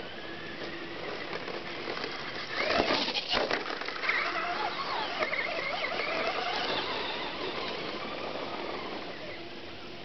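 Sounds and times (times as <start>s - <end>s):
electric motor whining: 0.0s - 10.0s.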